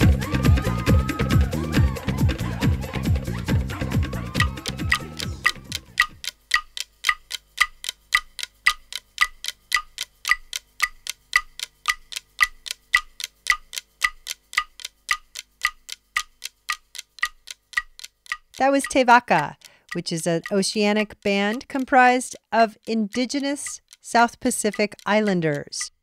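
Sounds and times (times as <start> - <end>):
song: 0.0 - 6.1
clock-like ticking: 0.0 - 26.0.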